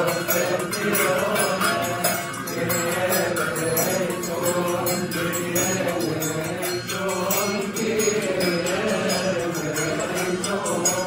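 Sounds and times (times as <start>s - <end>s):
group of voices chanting a hymn: 0.0s - 11.0s.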